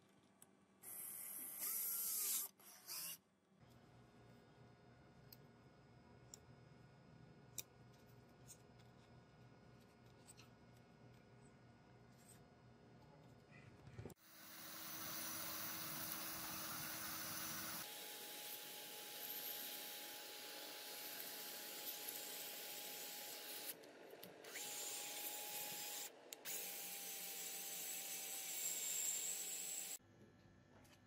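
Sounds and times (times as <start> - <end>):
electric drill motor whine: 0.8 - 3.2, 14.2 - 23.7, 24.4 - 30.0.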